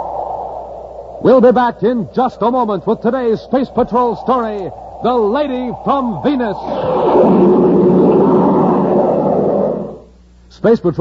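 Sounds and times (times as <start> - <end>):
faint low hum: 0.0 - 11.0
loud steady roaring: 2.8 - 10.2.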